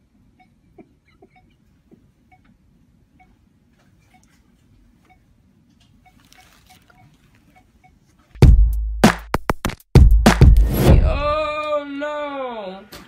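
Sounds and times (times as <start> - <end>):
patient monitor beeps: 5.0 - 5.3, 6.0 - 8.0
soft rustling: 5.9 - 8.3.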